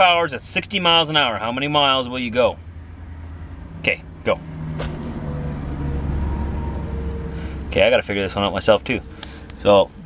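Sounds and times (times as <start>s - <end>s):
vehicle engine drone: 0.0s - 10.0s.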